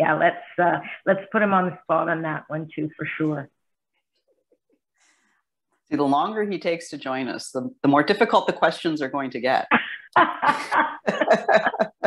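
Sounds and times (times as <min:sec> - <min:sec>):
woman laughing heartily: 0:09.7 - 0:12.0.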